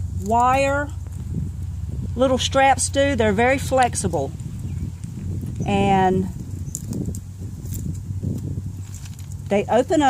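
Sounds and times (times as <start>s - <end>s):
steady low rumble: 0.0s - 10.0s
wire basket clicks and rustling: 3.6s - 10.0s.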